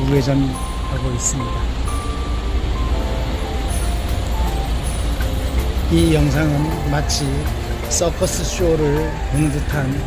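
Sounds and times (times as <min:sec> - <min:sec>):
car engines rumbling: 0:00.0 - 0:10.0.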